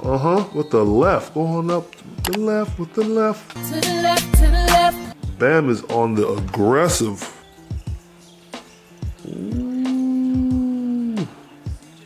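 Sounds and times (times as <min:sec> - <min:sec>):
man exclaiming ooh: 0:09.6 - 0:11.4.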